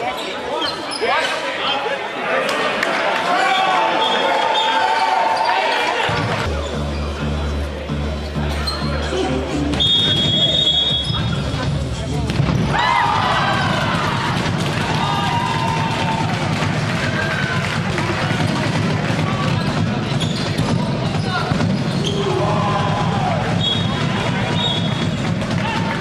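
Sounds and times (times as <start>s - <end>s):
players and spectators shouting: 1.6s - 6.5s, 12.6s - 19.8s, 20.6s - 26.0s
shrill whistle: 9.7s - 11.2s, 23.5s - 25.2s.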